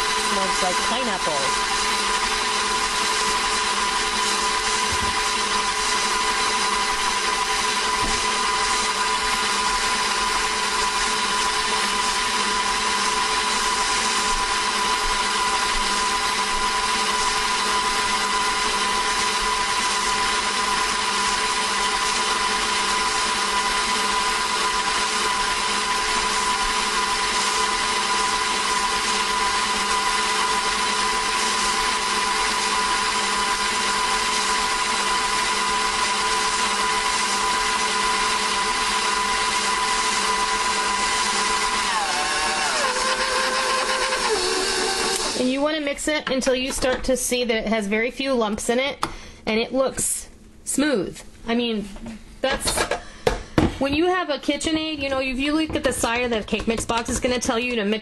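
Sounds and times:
stand mixer motor whine: 0.0s - 45.5s.

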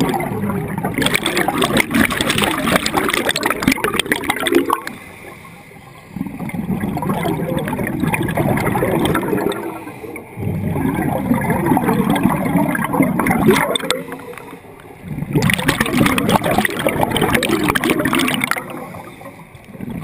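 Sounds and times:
underwater regulator bubbling: 0.0s - 5.1s, 6.1s - 20.0s.

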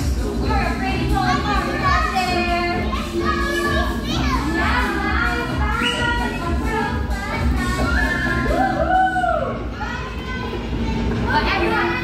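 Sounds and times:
background music: 0.0s - 9.7s
children calling and chattering: 0.0s - 12.0s.

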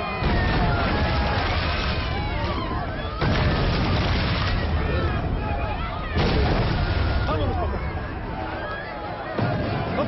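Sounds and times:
people shouting and screaming: 0.0s - 10.0s
artillery shell explosion: 0.2s - 8.0s.

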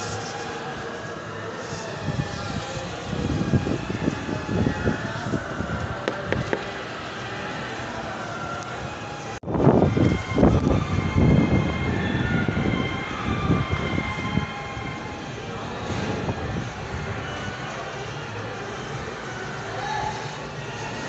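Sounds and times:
mechanical hum and rumble: 0.0s - 21.0s.

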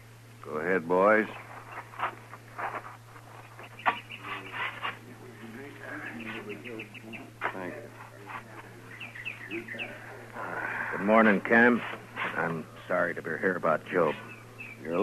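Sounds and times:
recording hum: 0.0s - 15.0s
bird chirps: 3.4s - 5.0s, 6.0s - 7.3s, 8.9s - 10.2s, 14.1s - 15.0s.

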